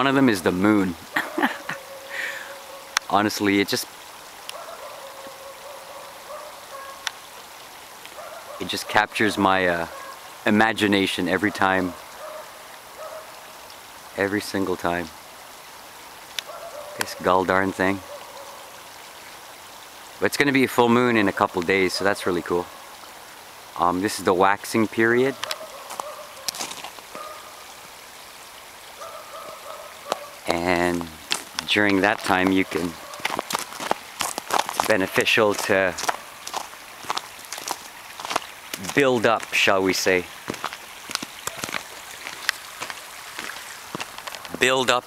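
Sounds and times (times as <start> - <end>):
outdoor background hiss: 0.0 - 45.0
footsteps on snow: 25.5 - 27.4, 31.0 - 39.6, 40.4 - 44.6.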